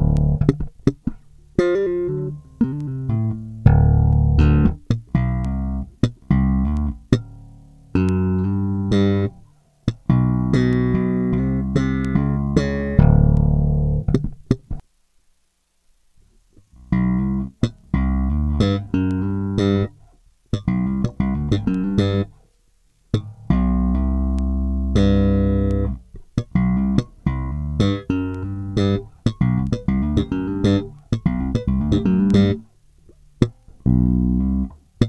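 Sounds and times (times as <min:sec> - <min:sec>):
slap bass guitar riff: 0:00.0 - 0:14.8, 0:16.7 - 0:22.4, 0:23.1 - 0:35.0.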